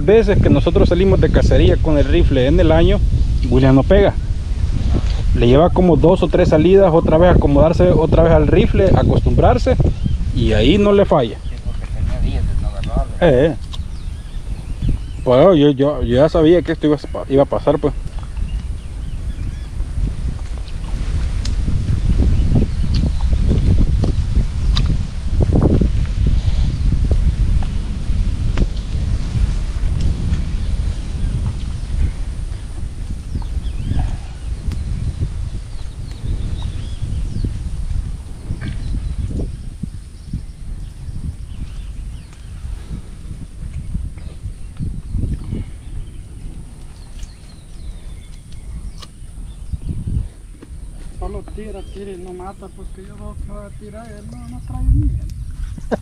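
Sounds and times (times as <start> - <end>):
rolling thunder: 0.0 - 46.9.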